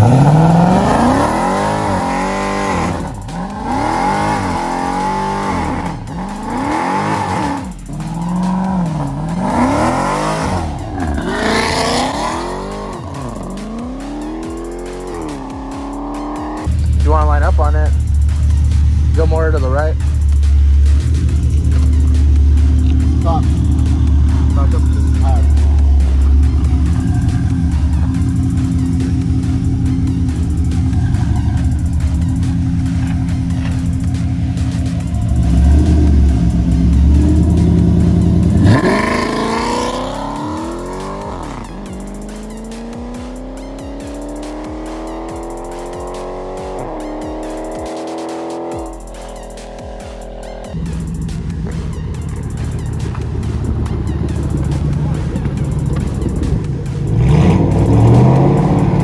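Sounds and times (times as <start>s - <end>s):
car engine revving and accelerating: 0.0s - 59.0s.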